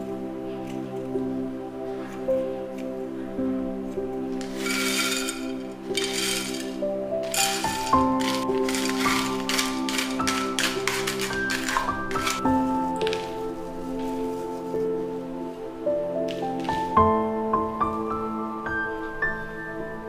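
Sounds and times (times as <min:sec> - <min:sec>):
soft music with held notes: 0:00.0 - 0:20.0
small clinks of gravel: 0:04.4 - 0:13.3
gravel scraping in clay bowl: 0:04.4 - 0:13.4.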